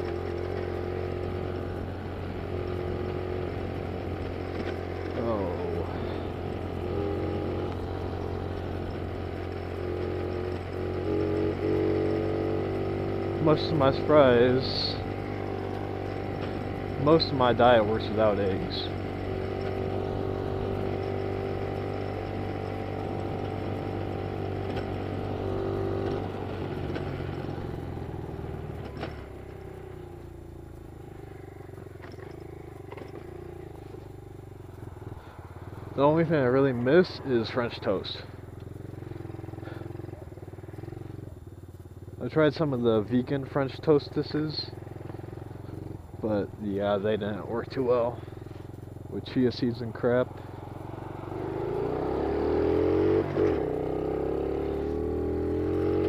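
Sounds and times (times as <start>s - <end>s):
motorcycle engine running: 0.0s - 56.0s
motorcycle engine putter: 24.6s - 36.0s.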